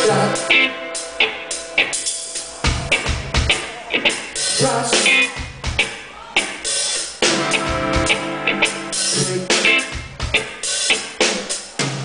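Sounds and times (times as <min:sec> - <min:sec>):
drum kit beat: 0:00.0 - 0:12.0
live band playing: 0:00.0 - 0:12.0.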